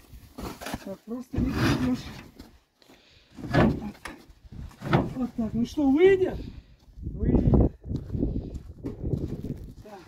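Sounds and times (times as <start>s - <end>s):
footsteps crunching in snow: 7.9s - 10.0s.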